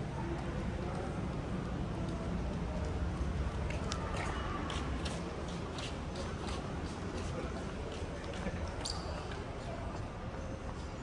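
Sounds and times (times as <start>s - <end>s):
footsteps on concrete floor: 3.6s - 10.9s.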